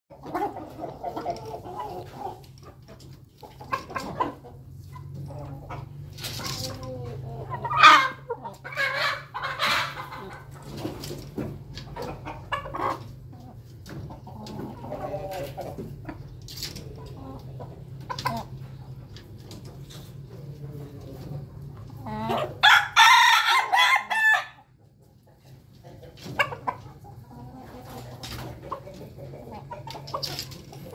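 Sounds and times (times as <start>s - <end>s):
chickens clucking: 0.1s - 30.9s.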